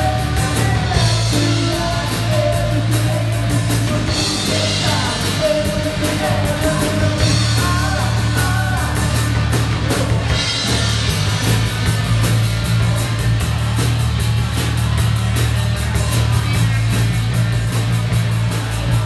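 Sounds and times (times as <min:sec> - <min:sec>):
man singing lead vocal: 0:00.0 - 0:10.8
live rock band playing: 0:00.0 - 0:19.0.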